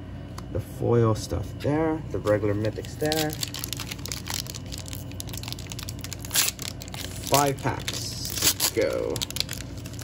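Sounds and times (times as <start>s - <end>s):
foil wrapper crinkling: 2.2s - 10.0s.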